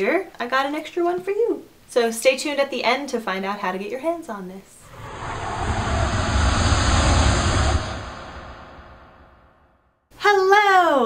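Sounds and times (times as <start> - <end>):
jet engine roaring: 4.8 - 9.7.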